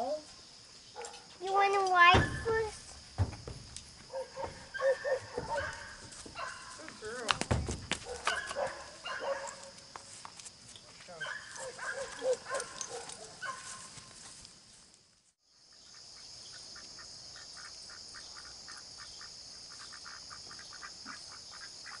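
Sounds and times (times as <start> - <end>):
insect chorus chirping: 0.0 - 22.0
waterfowl honking: 4.1 - 6.8.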